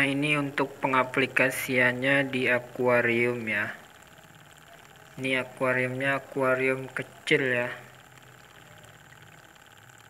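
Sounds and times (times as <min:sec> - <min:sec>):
small water pump running: 0:00.0 - 0:10.0.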